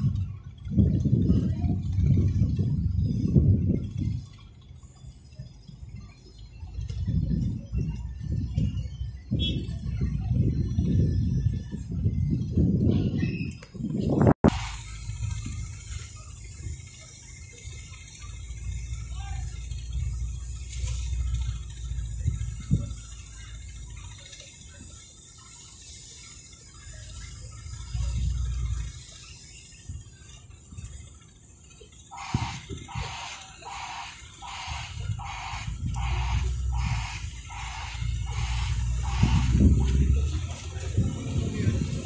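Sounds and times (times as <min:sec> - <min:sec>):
wind buffeting microphone: 0:00.0 - 0:25.5, 0:32.1 - 0:42.0
rhythmic pulsing sound: 0:00.0 - 0:42.0.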